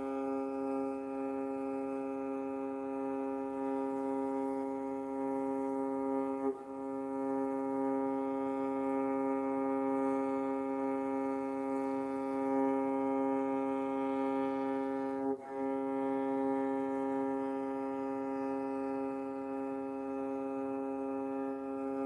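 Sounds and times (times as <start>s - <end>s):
bowed fiddle string long note: 0.0s - 22.0s.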